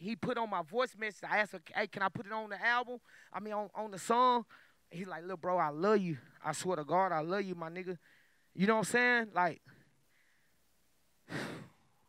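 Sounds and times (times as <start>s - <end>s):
man sighing into microphone: 11.3s - 12.0s.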